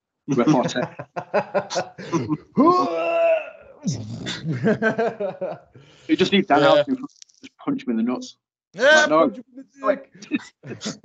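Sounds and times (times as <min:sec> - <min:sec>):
men laughing: 0:00.3 - 0:03.1, 0:04.4 - 0:05.8.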